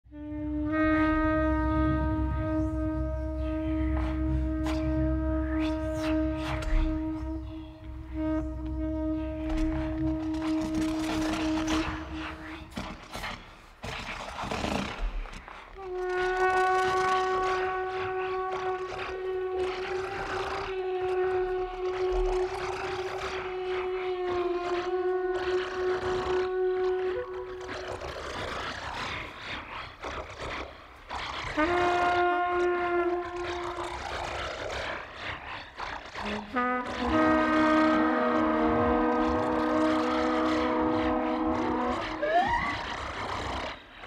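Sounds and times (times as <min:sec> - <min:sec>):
trumpet holding long notes: 0:00.1 - 0:12.8, 0:15.8 - 0:28.0, 0:31.6 - 0:34.5, 0:36.2 - 0:42.9
low drone: 0:00.2 - 0:13.6, 0:36.4 - 0:44.0
airy noise: 0:01.4 - 0:13.8.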